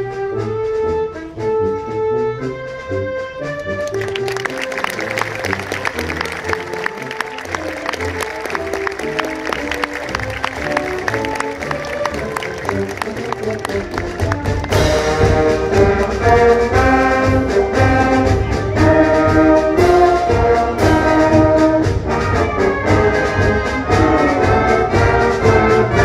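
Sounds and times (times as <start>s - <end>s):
brass chords: 0.0s - 26.0s
wind band playing: 0.0s - 26.0s
ticking percussion beat: 3.8s - 21.5s.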